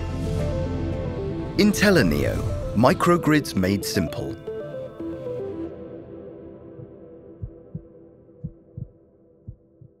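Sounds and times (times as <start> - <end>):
heartbeat thumps: 6.8 - 10.0.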